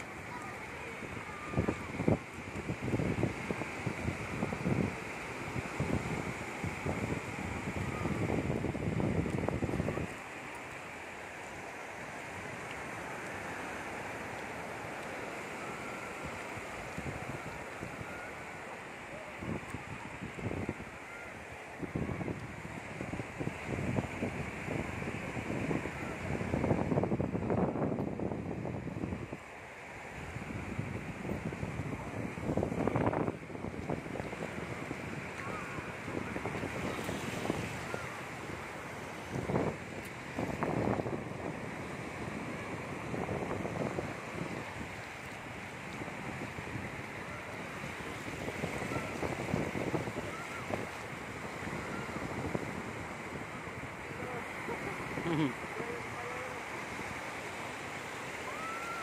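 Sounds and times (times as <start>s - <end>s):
wind buffeting microphone: 0.0s - 10.7s, 12.3s - 59.0s
small waves breaking on beach: 0.0s - 59.0s.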